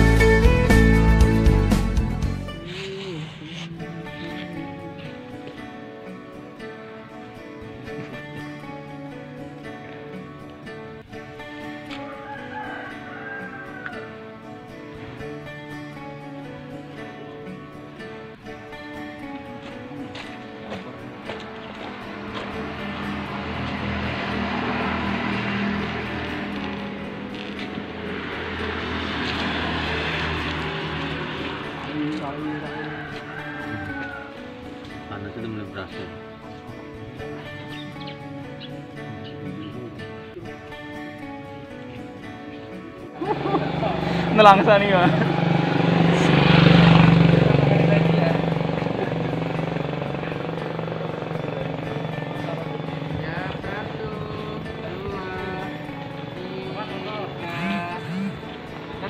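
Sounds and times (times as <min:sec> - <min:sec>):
background music with low notes: 0:00.0 - 0:59.0
motorbike running: 0:18.5 - 0:59.0.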